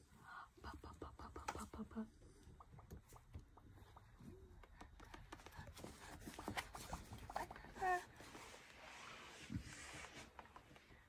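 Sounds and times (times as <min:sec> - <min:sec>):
plastic balloon crinkling and rustling: 0:02.8 - 0:11.0.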